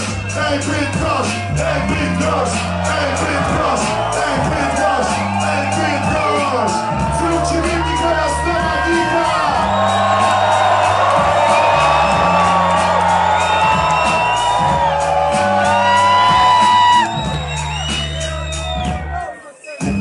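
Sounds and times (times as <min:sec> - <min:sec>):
bass-heavy beat through speakers: 0:00.0 - 0:20.0
crowd shouting and whooping: 0:00.0 - 0:20.0.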